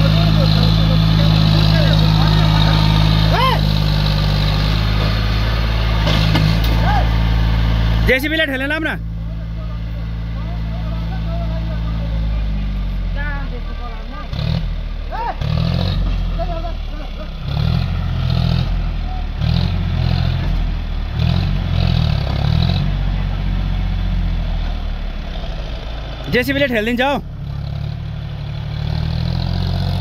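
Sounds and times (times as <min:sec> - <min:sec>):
tractor engine labouring: 0:00.0 - 0:30.0.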